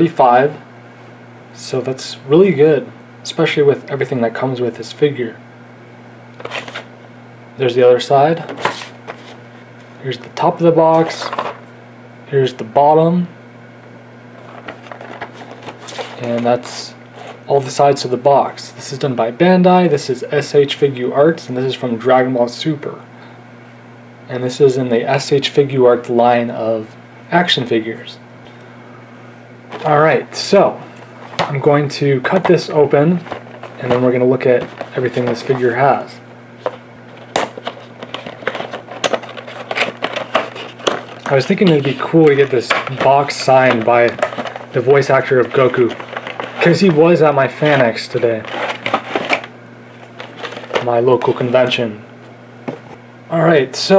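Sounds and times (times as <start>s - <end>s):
steady low hum: 0.0s - 53.9s
cardboard clicks and crackles: 36.6s - 46.8s, 47.7s - 49.5s.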